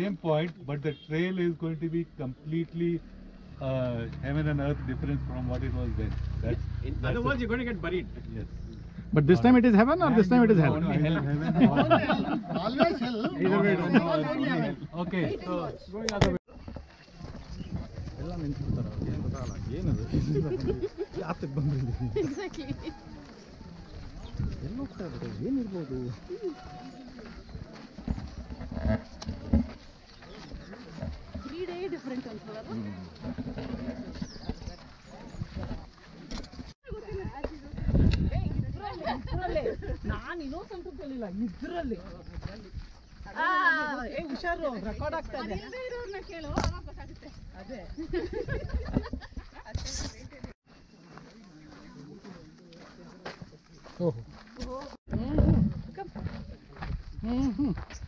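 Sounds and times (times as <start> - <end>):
footsteps on dirt path: 0.2 - 15.7, 16.4 - 58.0.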